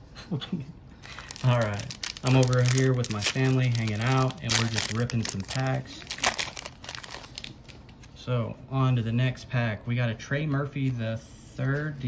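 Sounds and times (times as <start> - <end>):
foil wrapper crinkling: 1.0 - 8.1.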